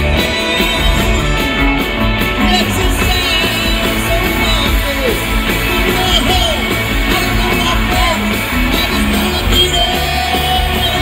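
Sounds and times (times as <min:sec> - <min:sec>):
lead vocals singing: 0:00.0 - 0:11.0
live rock band playing: 0:00.0 - 0:11.0.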